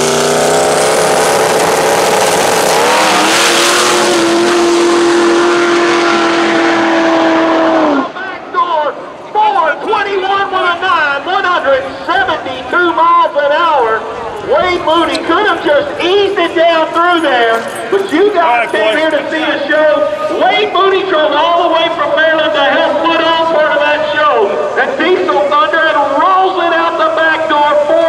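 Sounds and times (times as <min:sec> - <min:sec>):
dragster diesel engine full throttle: 0:00.0 - 0:27.9
men's voices: 0:08.0 - 0:28.0.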